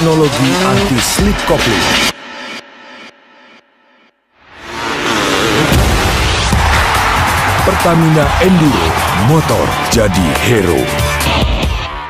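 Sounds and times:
advert soundtrack echoing: 0.0s - 12.0s.

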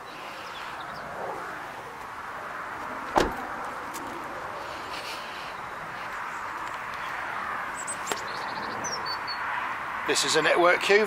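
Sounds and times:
car door shutting thud: 3.1s - 3.5s.

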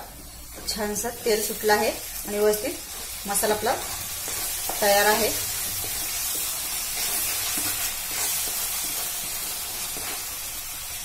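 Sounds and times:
paste sizzling in oil: 0.0s - 11.0s.

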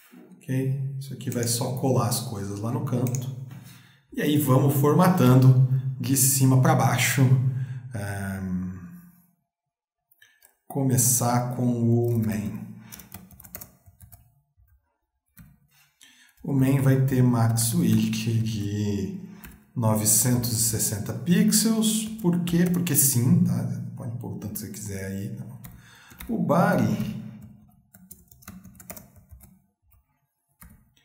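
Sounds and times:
faint computer keyboard typing: 2.9s - 3.3s, 12.0s - 14.8s, 19.2s - 20.2s, 21.9s - 23.1s, 25.4s - 31.0s.

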